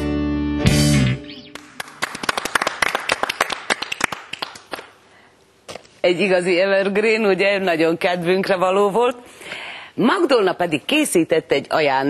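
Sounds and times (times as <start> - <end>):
small group clapping: 1.5 - 5.0.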